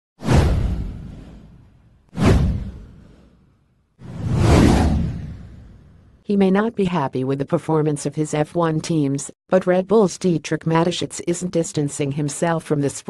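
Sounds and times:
whoosh sound effects: 2.2 - 6.1.

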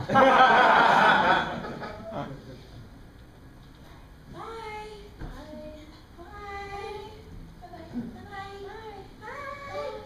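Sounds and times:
woman singing long notes: 4.4 - 10.0.

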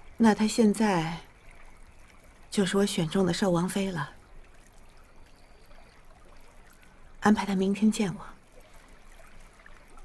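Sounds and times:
woman speaking: 0.2 - 1.2, 2.6 - 4.2, 7.2 - 8.4.

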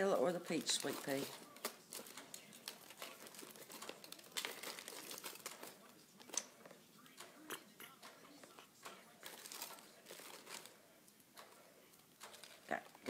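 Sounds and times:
plastic wrapping crinkling: 0.0 - 6.8, 8.5 - 11.2, 11.9 - 13.0.

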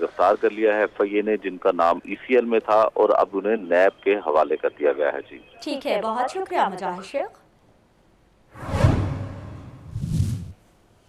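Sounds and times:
falling whoosh with low rumble: 8.6 - 10.6.

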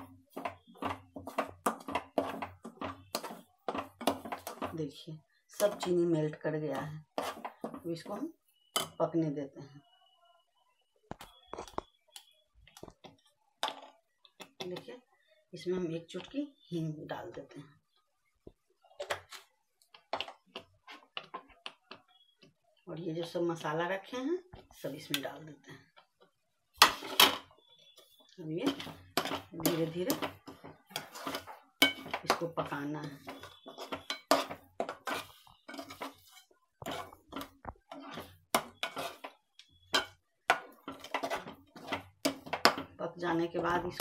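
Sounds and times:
utensils knocking on a pan: 0.0 - 4.8, 28.6 - 43.0.

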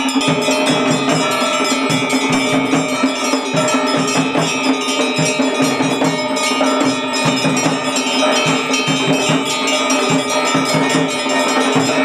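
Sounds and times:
quick low drum beat: 0.0 - 12.0
temple bells ringing: 0.0 - 12.0.

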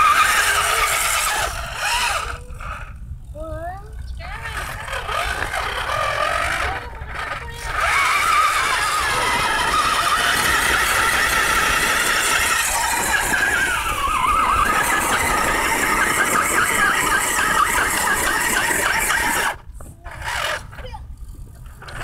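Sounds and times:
electric drivetrain whining: 0.0 - 22.0.

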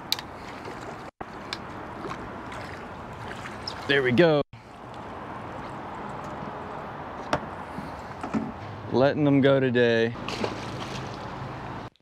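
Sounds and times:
wind: 0.0 - 12.0
water washing around a boat: 0.3 - 4.9, 10.2 - 11.5.

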